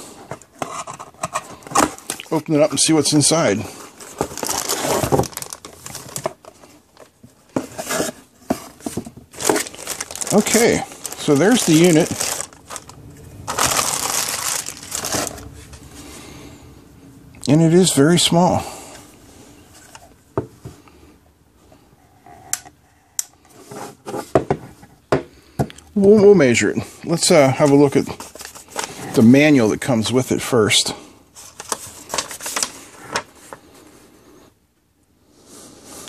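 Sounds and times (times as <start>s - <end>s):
handling plastic case: 0.2s - 2.7s, 3.6s - 15.9s, 27.5s - 29.3s, 31.4s - 33.6s
cardboard box rustling: 3.9s - 15.9s
plastic bag crinkling: 4.0s - 7.2s, 9.3s - 15.8s.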